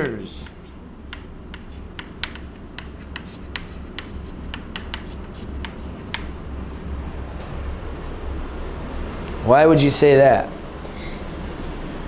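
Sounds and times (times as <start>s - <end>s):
low room hum: 0.0s - 12.0s
chalk tapping and scratching: 0.3s - 6.8s.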